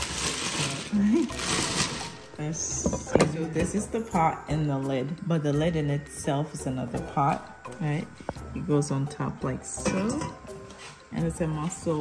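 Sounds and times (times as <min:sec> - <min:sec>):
plastic packaging crinkling: 0:00.0 - 0:02.4.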